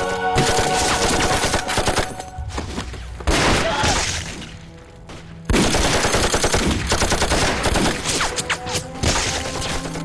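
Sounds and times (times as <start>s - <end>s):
rapid gunfire: 0.4s - 2.2s, 5.5s - 8.4s.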